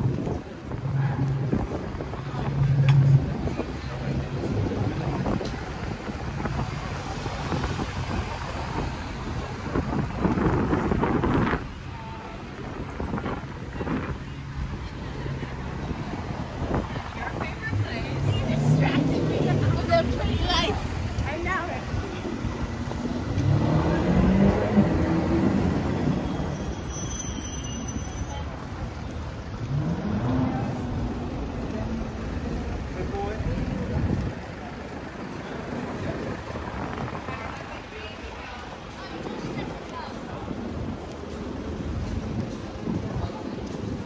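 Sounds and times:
vehicle engine humming: 0.0s - 39.7s
passers-by talking faintly: 0.0s - 44.0s
street noise: 0.0s - 44.0s.

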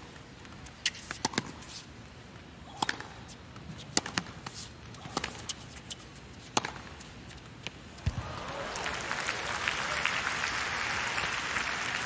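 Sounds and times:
racket striking tennis ball: 0.8s - 1.7s, 2.7s - 7.0s.

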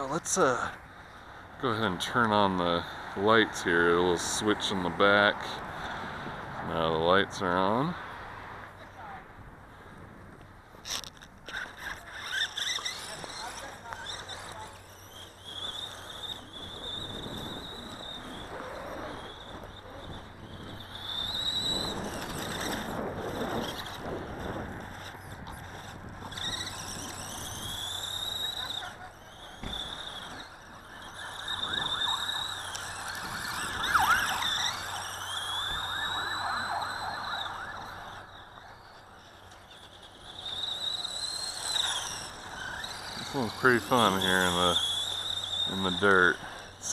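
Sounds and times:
high-pitched motor squeal: 0.0s - 8.0s, 10.7s - 46.9s
gravel crunching under tyres: 0.0s - 46.9s.

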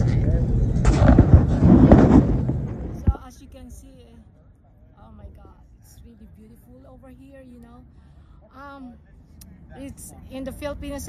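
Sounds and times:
wind buffeting microphone: 0.0s - 3.9s
road traffic: 0.0s - 11.0s.

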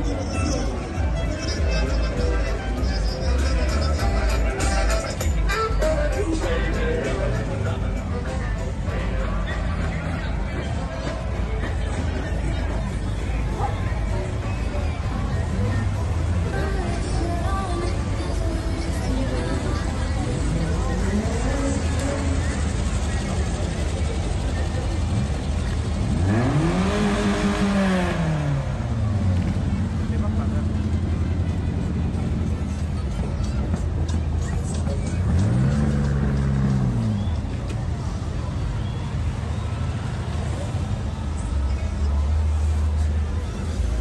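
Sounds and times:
music: 0.0s - 23.1s
crowd noise: 0.0s - 44.0s
engine revving: 24.4s - 31.6s, 35.1s - 37.6s.

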